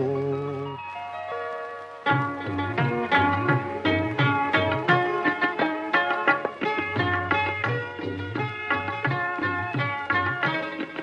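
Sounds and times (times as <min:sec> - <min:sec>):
man singing: 0:00.0 - 0:00.8.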